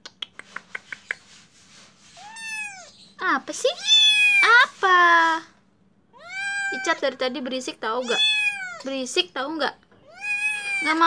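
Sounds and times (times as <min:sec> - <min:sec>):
kitten meowing: 0:02.2 - 0:02.9, 0:03.8 - 0:04.6, 0:06.2 - 0:07.0, 0:08.0 - 0:08.9, 0:10.0 - 0:11.0.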